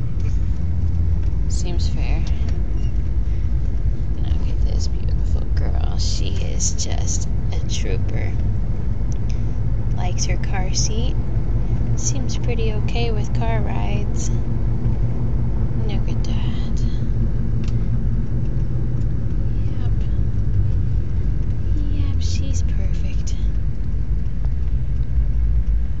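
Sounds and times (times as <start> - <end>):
car interior rumble: 0.0 - 26.0.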